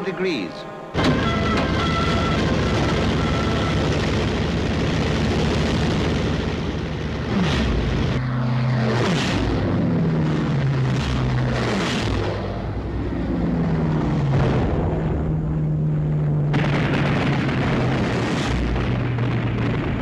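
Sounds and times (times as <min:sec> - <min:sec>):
propeller planes flying past: 0:00.0 - 0:20.0.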